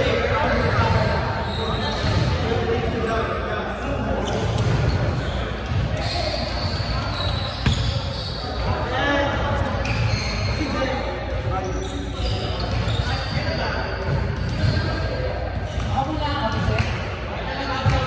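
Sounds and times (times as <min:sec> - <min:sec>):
players' voices: 0:00.0 - 0:18.0
volleyballs hit and bouncing: 0:04.3 - 0:08.9, 0:12.4 - 0:18.0.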